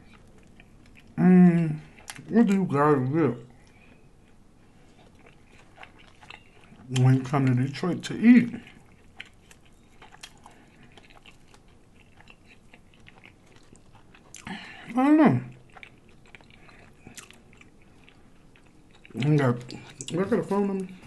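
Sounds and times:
chewing with crunches: 0.0s - 21.0s.

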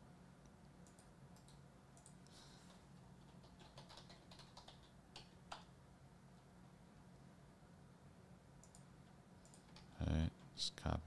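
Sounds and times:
faint computer clicks: 0.4s - 5.7s, 8.6s - 10.5s.

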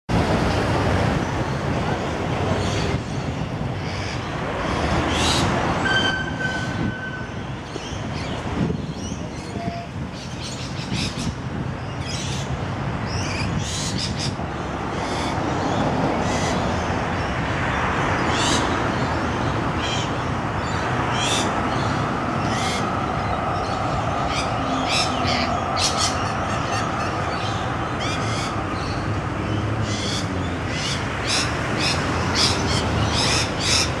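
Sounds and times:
lorikeets shrill calls: 20.7s - 29.0s, 29.8s - 34.0s.

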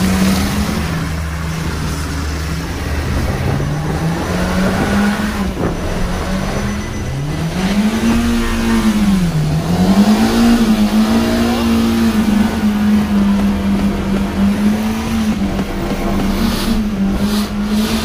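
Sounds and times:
car engine revving hard: 0.0s - 18.0s
wheel spinning in mud: 0.0s - 18.0s.

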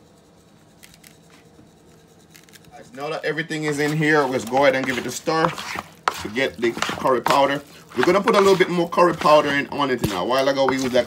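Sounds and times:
wooden spoon scraping mortar: 0.8s - 11.0s.

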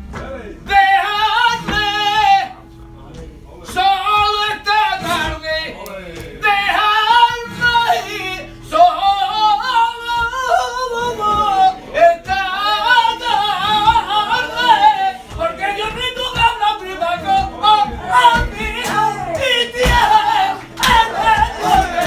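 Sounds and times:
flamenco guitar: 0.0s - 22.0s
man singing: 0.1s - 22.0s.

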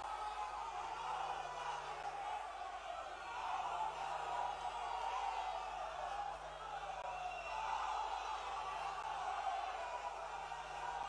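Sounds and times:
large audience cheering: 0.0s - 11.0s.

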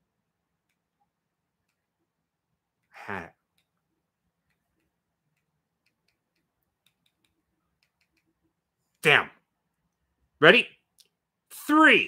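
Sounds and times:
faint evenly spaced clicks: 0.3s - 10.2s.

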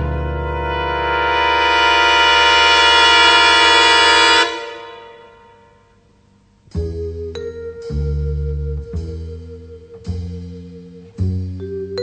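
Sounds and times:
sustained brass chord: 0.0s - 6.1s.

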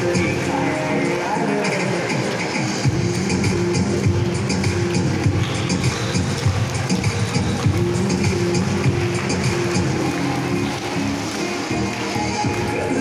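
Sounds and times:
dance music with steady beat: 0.0s - 13.0s.

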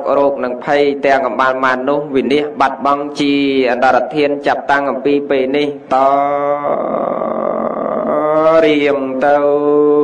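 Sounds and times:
man chanting held notes: 0.0s - 10.0s.

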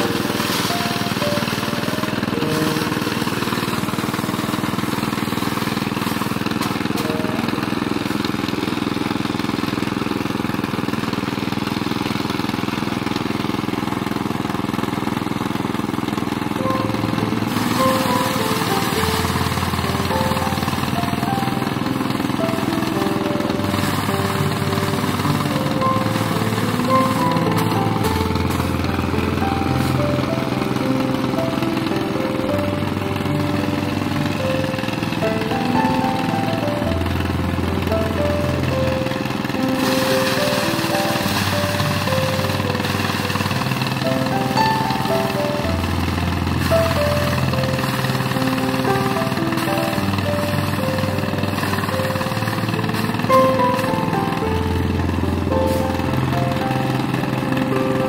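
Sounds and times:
background music: 0.0s - 8.1s, 16.6s - 58.0s
small engine running: 0.0s - 58.0s.

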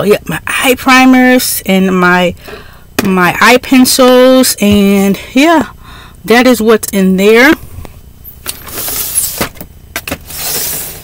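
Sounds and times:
plastic drawers sliding: 8.4s - 11.0s.

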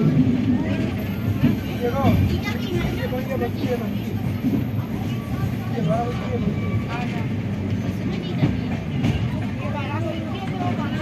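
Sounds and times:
people talking: 0.0s - 11.0s
train rumble: 0.0s - 11.0s.

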